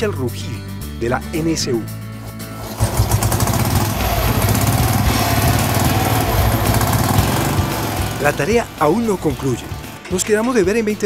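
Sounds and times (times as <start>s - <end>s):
motorcycle engine running: 2.3s - 10.0s
engine failing to start: 2.4s - 9.9s.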